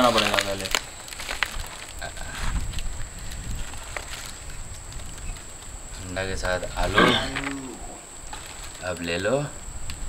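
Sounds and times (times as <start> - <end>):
person exclaiming: 6.8 - 8.0.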